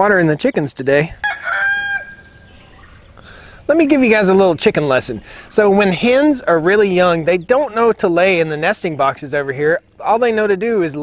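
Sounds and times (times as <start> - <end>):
rooster crowing: 1.2 - 2.9.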